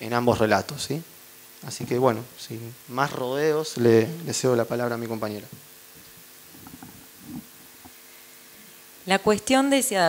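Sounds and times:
faint sound system hum: 0.0 - 10.0
microphone handling rumbles: 6.5 - 7.9.

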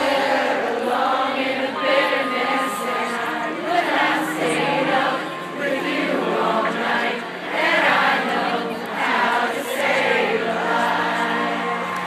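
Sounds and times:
crowd singing: 0.0 - 12.0
band playing: 1.8 - 8.5.

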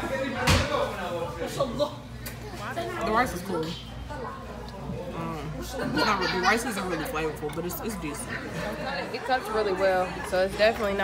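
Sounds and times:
restaurant chatter: 0.0 - 11.0.

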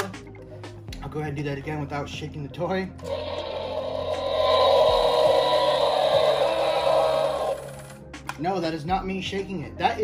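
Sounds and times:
toy dinosaur electronic roar: 3.0 - 7.8.

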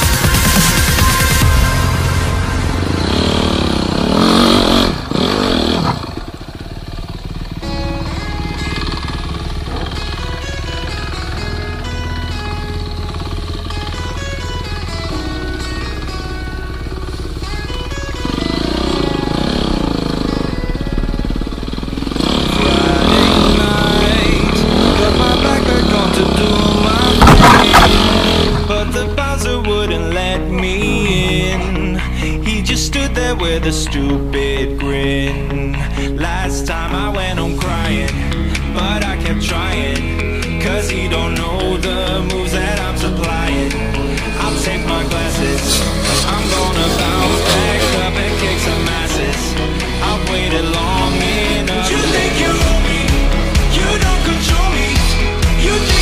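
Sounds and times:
background music: 0.0 - 6.0, 7.4 - 56.0
motorcycle engine revving: 0.0 - 56.0.

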